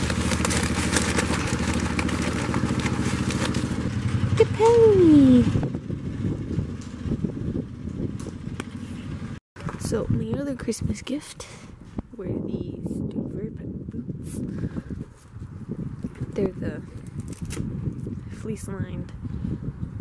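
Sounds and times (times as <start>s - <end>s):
engine running: 0.0s - 9.9s.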